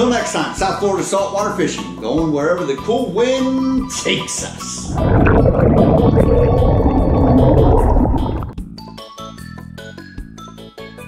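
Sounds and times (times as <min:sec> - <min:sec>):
low rumbling whoosh: 0:04.9 - 0:08.6.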